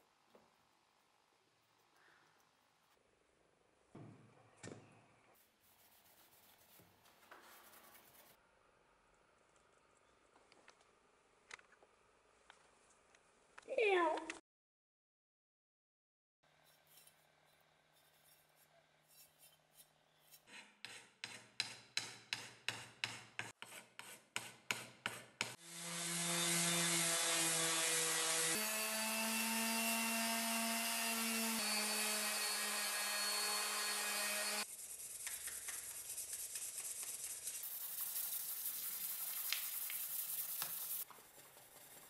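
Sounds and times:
hand scraping strokes: 5.4 - 8.4, 34.4 - 42.0
hand sanding wood: 23.5 - 42.0
orbital sander running on wood: 25.6 - 34.7.

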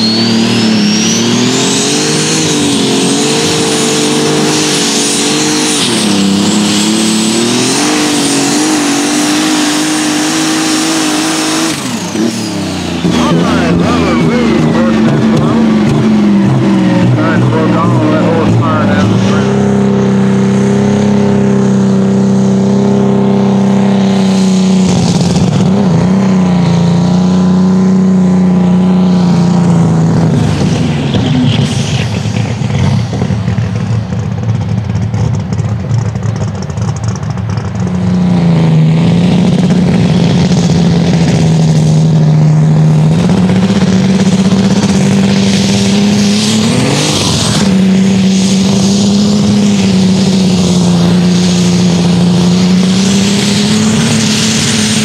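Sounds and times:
diesel tractor engines droning: 0.0 - 55.0.

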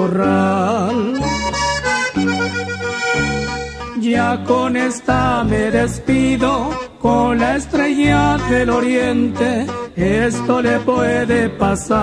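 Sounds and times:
held bass notes: 0.0 - 12.0
accordion playing: 0.8 - 12.0.

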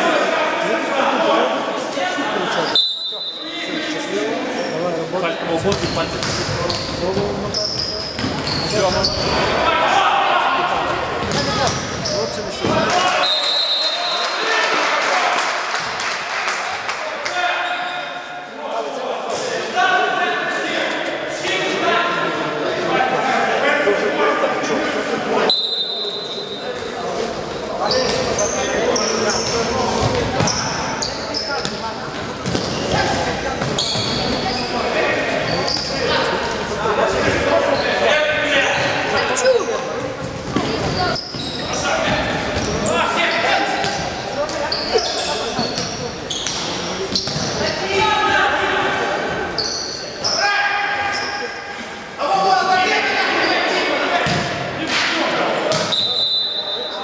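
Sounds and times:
players shouting: 8.7 - 11.7.

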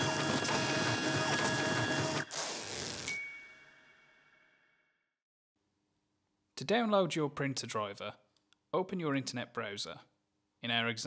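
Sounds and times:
printer printing noise: 0.0 - 2.3
short bright hiss: 2.2 - 3.1.

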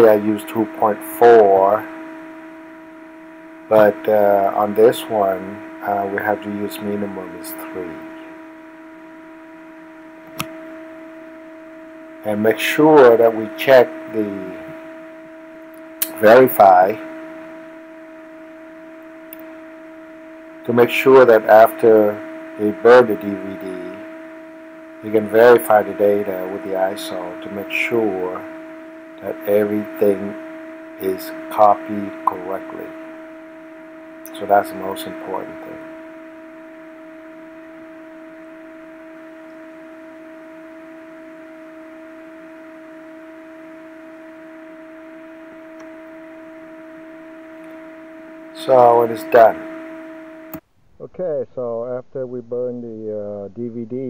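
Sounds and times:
steady hum: 0.0 - 54.0.

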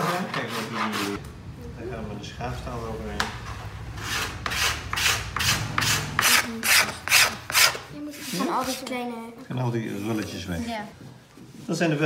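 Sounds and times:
steel scraper rasping on wood: 4.0 - 8.8.

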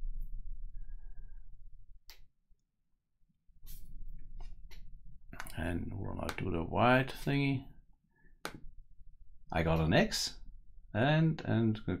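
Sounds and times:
man talking: 5.4 - 7.8, 9.5 - 12.0.

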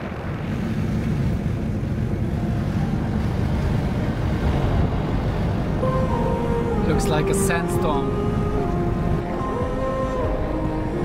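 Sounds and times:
vehicle driving rumble: 0.0 - 11.0
wind noise on microphone: 0.0 - 11.0.

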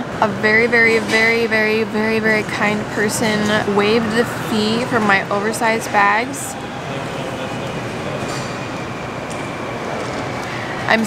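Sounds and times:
terminal hall rumble and hiss: 0.0 - 11.0.

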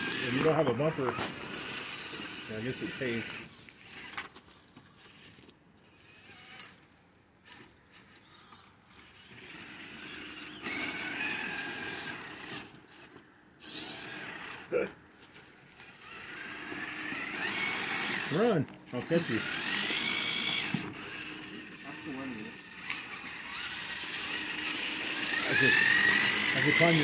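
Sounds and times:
electric motors whining: 0.0 - 27.0.

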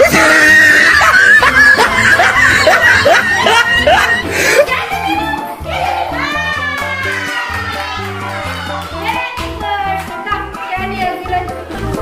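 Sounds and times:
person laughing: 0.0 - 4.8.

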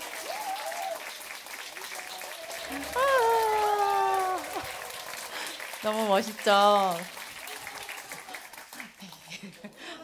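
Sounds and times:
audience applause: 0.0 - 10.0.

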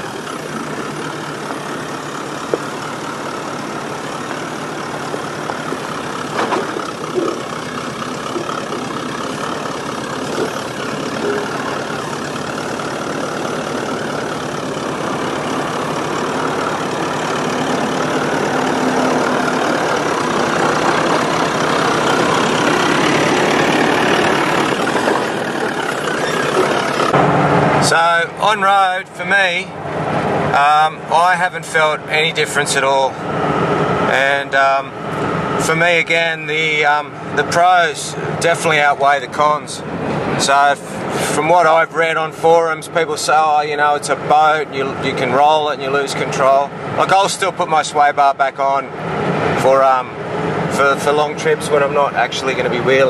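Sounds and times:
diesel engine running at low revs: 0.0 - 53.0.

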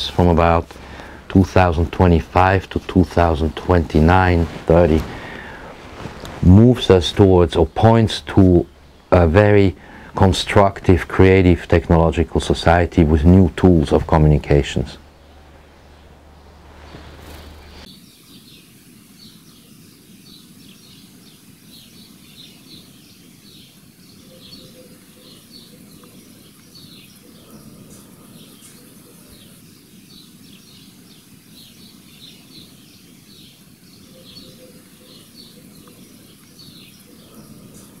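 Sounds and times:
low outdoor rumble: 0.0 - 17.9
small birds chirping: 0.0 - 38.0.

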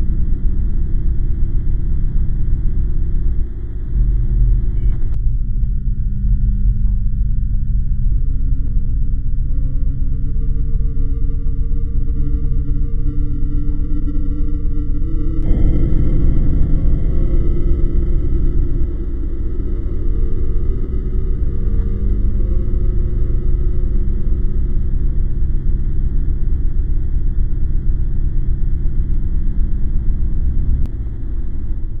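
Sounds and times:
faint hum: 0.0 - 32.0
loud low rumble: 0.0 - 32.0.

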